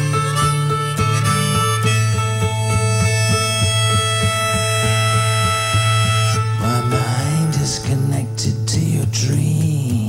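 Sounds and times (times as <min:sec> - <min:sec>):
harmonica chord: 0:00.0 - 0:07.7
acoustic guitar strumming: 0:00.0 - 0:10.0.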